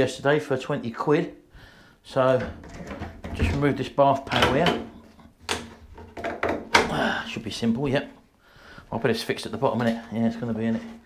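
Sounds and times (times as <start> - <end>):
bath panel being pried away: 2.4 - 7.2
knocking: 5.5 - 7.0.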